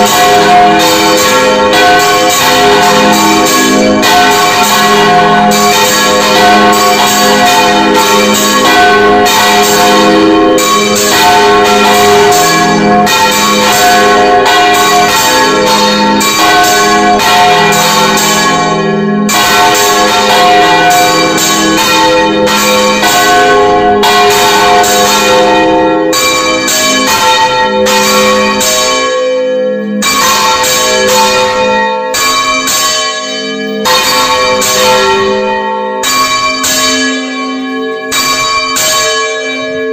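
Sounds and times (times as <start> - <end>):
church bells pealing: 0.0 - 39.9.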